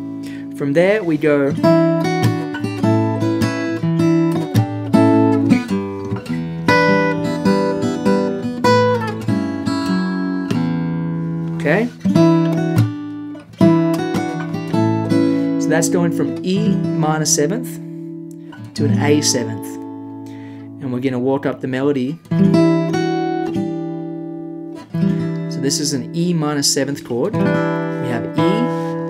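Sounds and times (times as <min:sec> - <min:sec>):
fingerstyle acoustic guitar: 0:00.0 - 0:29.0.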